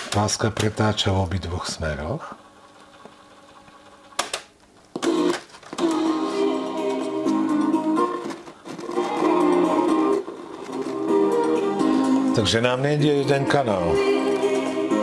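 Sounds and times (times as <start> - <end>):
music from cassette tape: 2.8 - 15.0.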